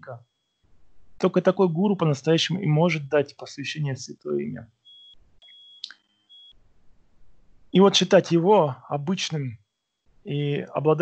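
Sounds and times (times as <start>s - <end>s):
faint high-pitched electronic beep: 0.0s - 0.2s, 1.2s - 6.6s.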